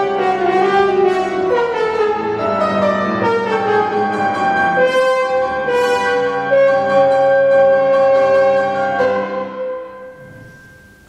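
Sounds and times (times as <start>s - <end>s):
piano chord: 0.0s - 11.0s
french horn long note: 10.0s - 11.0s.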